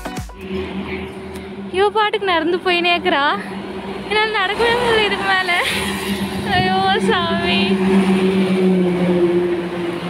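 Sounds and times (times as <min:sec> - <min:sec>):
road traffic hum: 0:00.3 - 0:10.0.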